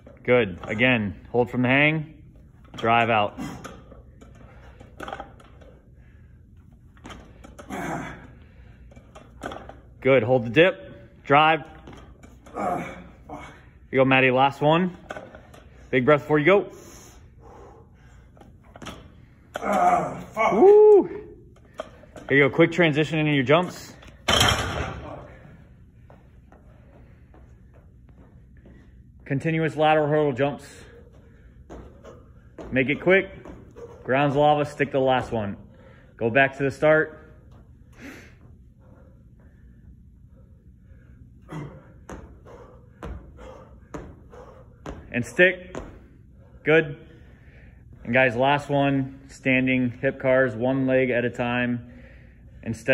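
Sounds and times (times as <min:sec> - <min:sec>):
barbell crashing on platform: 0:24.2 - 0:25.1.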